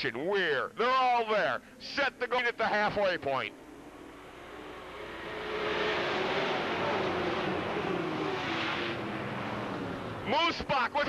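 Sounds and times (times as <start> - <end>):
race car engines passing: 2.2 - 11.0.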